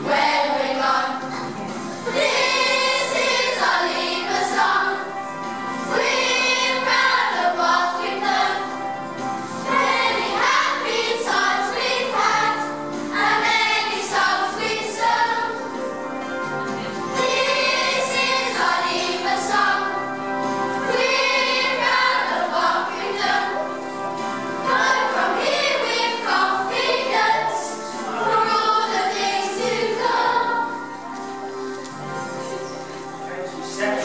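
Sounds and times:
children's choir singing: 0.0s - 34.0s
musical accompaniment: 0.0s - 34.0s.

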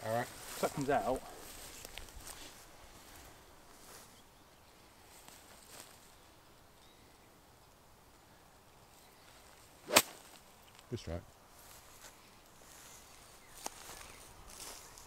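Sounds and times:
golf club striking ball: 9.9s - 10.2s.

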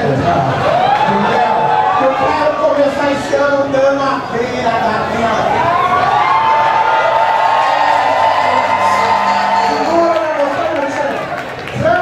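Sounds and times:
crowd cheering: 0.1s - 3.1s, 5.4s - 12.0s.

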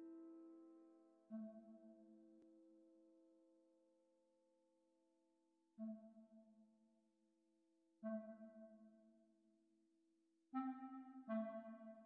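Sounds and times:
clarinet playing soft low notes: 0.0s - 2.4s, 10.6s - 12.0s.

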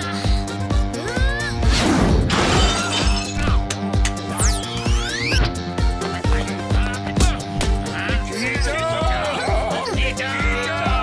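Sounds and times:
cartoon action music: 0.0s - 11.0s.

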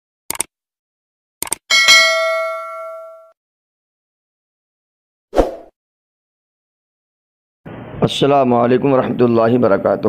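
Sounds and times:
bright metallic bell chime: 1.7s - 3.4s.

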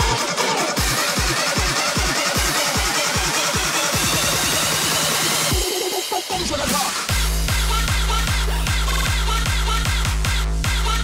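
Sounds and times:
steady kick drum: 0.0s - 6.5s, 7.1s - 11.0s
electronic dance music: 0.0s - 11.0s.

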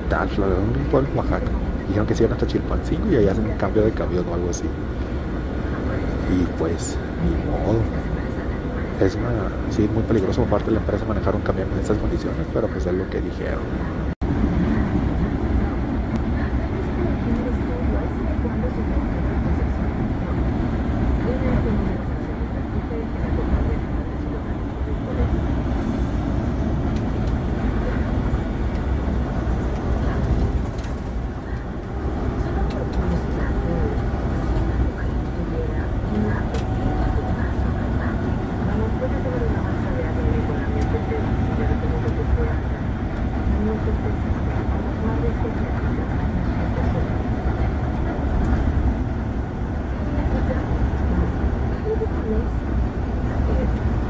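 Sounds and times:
bus engine and road rumble: 0.0s - 54.0s
faint voices: 0.0s - 54.0s.

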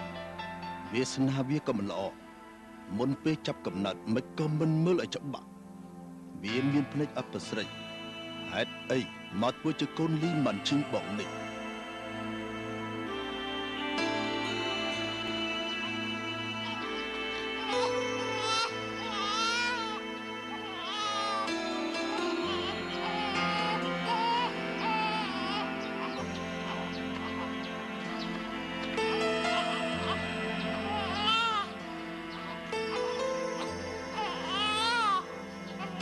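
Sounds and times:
background music with chords: 0.0s - 36.0s
infant crying: 16.6s - 27.6s, 28.8s - 36.0s.

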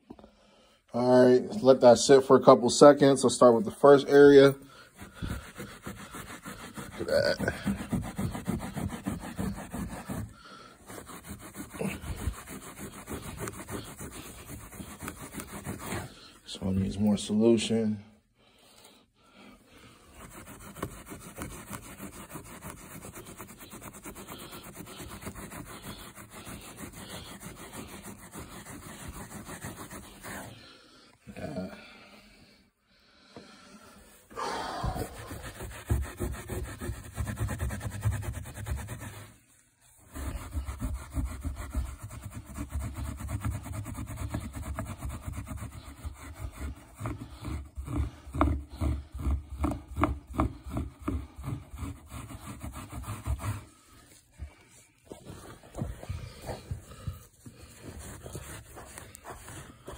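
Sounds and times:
rag scrubbing carpet: 1.0s - 17.6s, 19.8s - 31.0s, 34.3s - 59.9s.

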